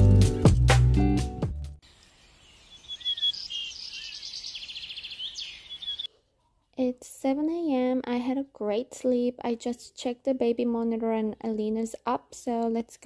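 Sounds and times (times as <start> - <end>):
background music: 0.0 - 1.8
small birds chirping: 1.8 - 6.8.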